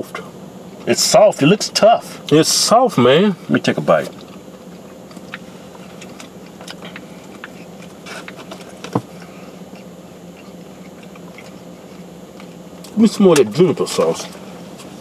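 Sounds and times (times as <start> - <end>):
faint car cabin hum: 0.0 - 15.0
chewing mouth sounds: 4.1 - 13.0.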